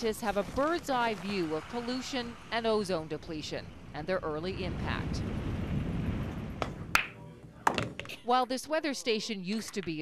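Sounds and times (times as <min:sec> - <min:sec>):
low rumble: 0:01.1 - 0:07.0.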